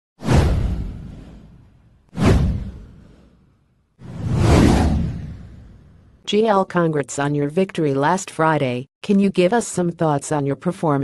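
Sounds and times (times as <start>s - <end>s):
whoosh sound effects: 2.2s - 6.1s.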